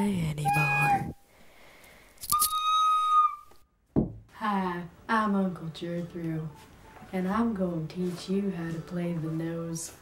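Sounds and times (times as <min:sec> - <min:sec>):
knock: 0:03.9 - 0:04.2.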